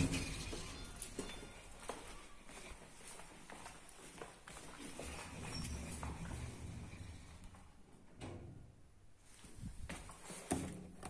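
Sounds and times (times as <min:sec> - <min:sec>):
footsteps on tiled floor: 0:00.0 - 0:06.8, 0:09.2 - 0:11.0.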